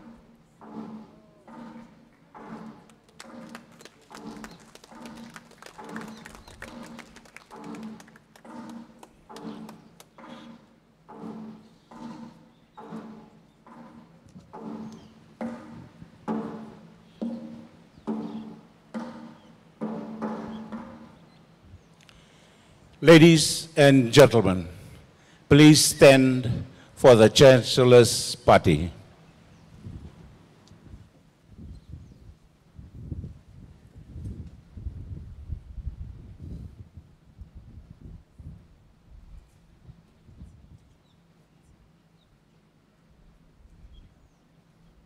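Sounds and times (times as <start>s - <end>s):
pitched drum beaten slowly: 0.0s - 21.3s.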